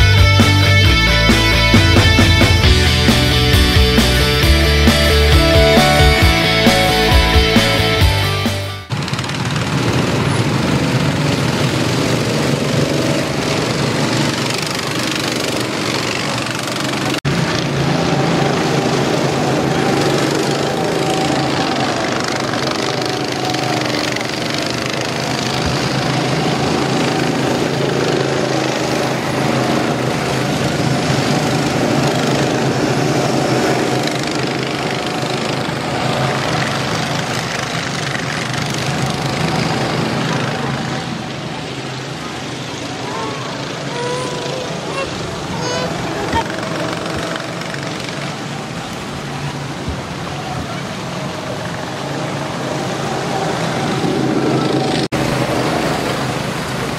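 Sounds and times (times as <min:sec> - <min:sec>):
go-kart engines droning: 0:08.8 - 0:56.9.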